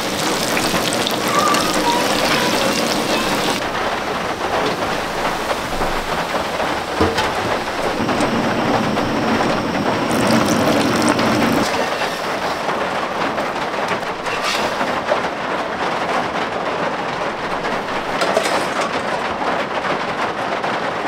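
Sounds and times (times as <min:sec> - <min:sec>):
heavy rain on a roof: 0:00.0 - 0:21.0.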